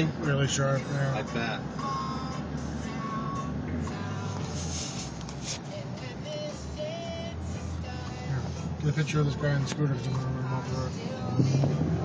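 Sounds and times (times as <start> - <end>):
car driving rumble inside cabin: 0.0 - 12.0
music playing: 0.0 - 12.0.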